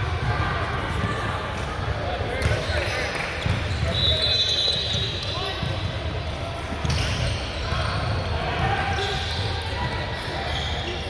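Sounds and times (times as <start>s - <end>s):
indistinct background chatter: 0.0s - 11.0s.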